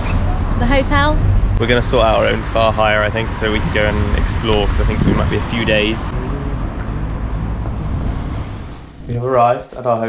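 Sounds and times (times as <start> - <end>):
traffic going by: 0.0 - 9.5
wind rumbling on microphone: 0.4 - 9.2.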